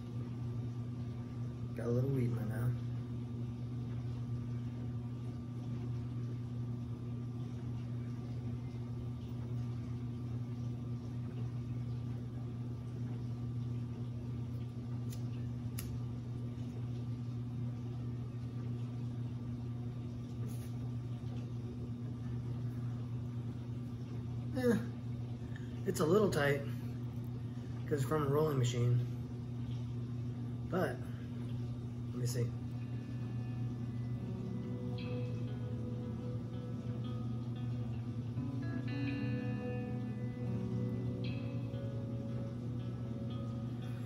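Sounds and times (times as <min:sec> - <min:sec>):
low mechanical hum: 0:00.0 - 0:44.0
faint clicks: 0:14.5 - 0:16.0.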